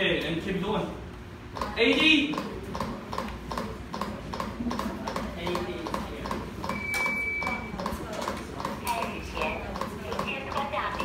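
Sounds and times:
steady beep: 6.7 - 7.8.

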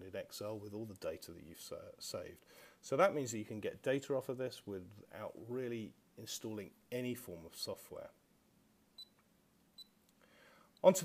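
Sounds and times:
high-pitched key-press beeps: 9.0 - 9.2.

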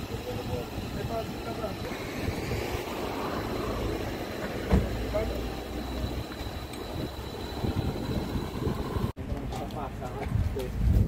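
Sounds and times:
engine idling low rumble: 0.0 - 9.1.

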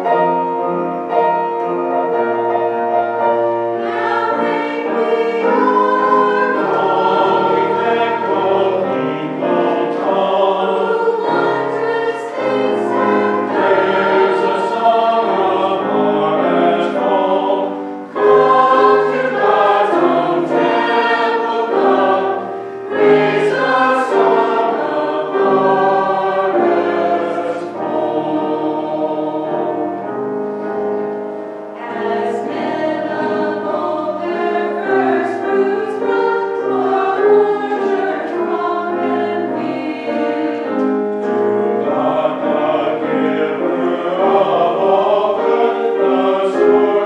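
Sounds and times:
mixed choir singing: 0.0 - 47.0.

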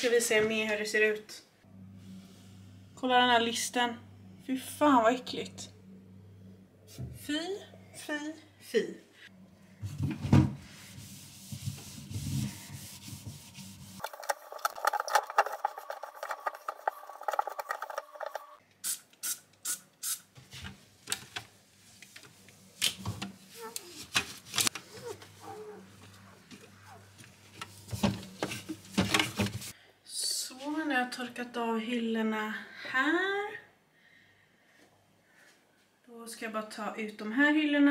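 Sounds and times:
sponge rubbing plastic and glass: 10.7 - 18.6.

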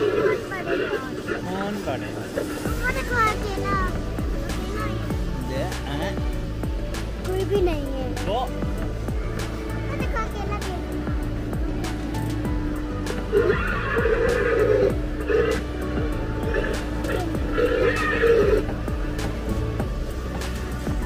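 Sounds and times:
music: 0.0 - 21.0
steady hum: 0.0 - 21.0.

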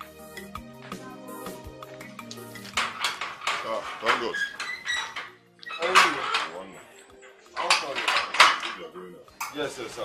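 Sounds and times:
metal gate clanking and rattling: 2.5 - 6.8, 7.6 - 9.7.

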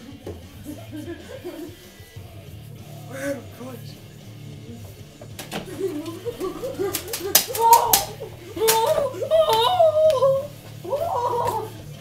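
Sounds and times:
person wailing like a cat: 6.0 - 11.8.

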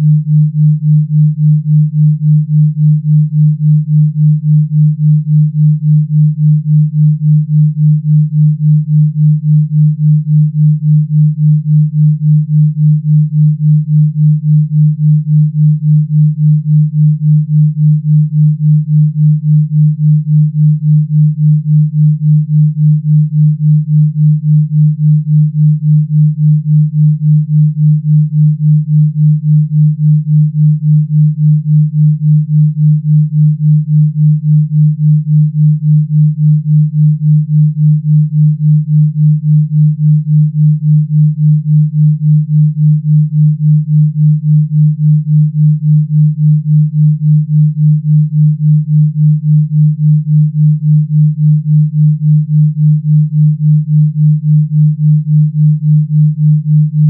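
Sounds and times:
pulsing low sine tone: 0.0 - 57.0.

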